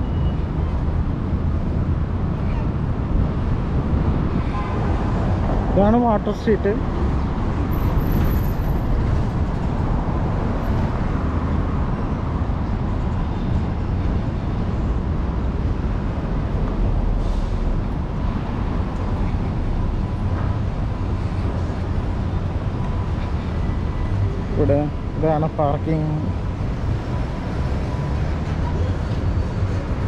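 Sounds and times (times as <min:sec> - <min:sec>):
city traffic rumble: 0:00.0 - 0:30.0.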